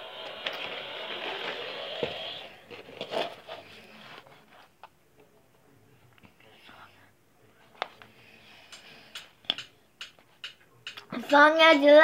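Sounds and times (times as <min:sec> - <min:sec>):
soft whispering: 0:05.3 - 0:09.1
fingertip tapping tablet: 0:08.6 - 0:11.5.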